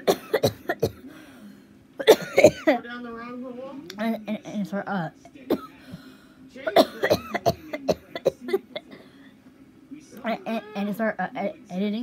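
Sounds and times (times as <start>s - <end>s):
woman coughing: 0.0s - 1.0s, 2.0s - 2.8s, 6.7s - 8.8s.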